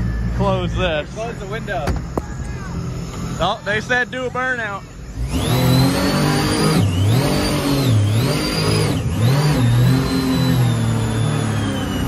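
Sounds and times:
boat engine revving: 0.0s - 12.0s
supercharger whine: 0.0s - 12.0s.

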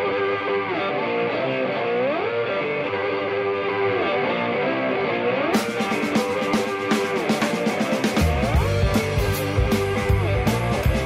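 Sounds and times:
slide guitar riff: 0.0s - 11.0s
drum kit with cymbals: 5.5s - 11.0s.

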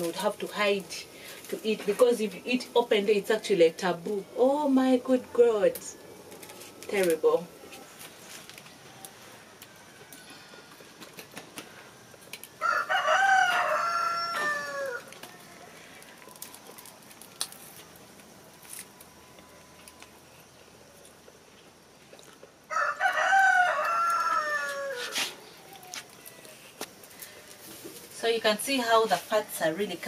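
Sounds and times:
rooster crowing: 12.6s - 16.0s, 22.7s - 26.7s.

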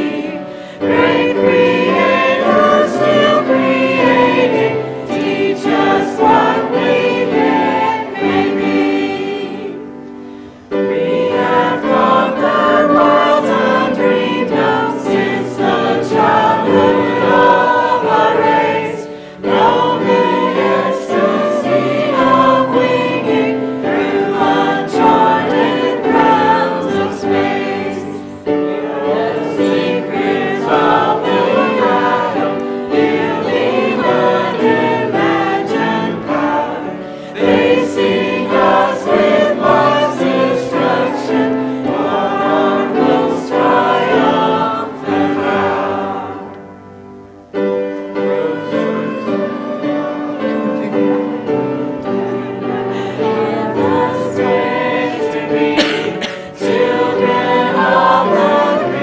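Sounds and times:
choir and congregation singing hymn: 0.0s - 59.0s
piano accompaniment: 0.0s - 59.0s.

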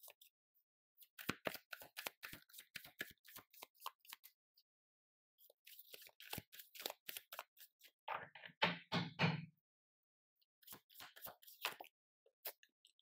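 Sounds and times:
cards being shuffled: 1.1s - 4.3s, 5.7s - 7.5s.

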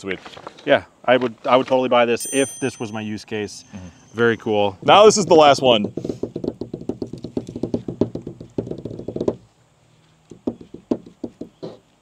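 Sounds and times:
hands drumming on a table: 5.8s - 9.4s, 10.3s - 11.8s.

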